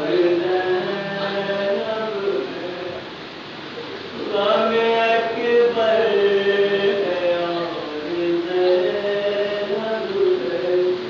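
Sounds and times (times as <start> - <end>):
man chanting a lament: 0.0 - 3.0, 4.2 - 11.0.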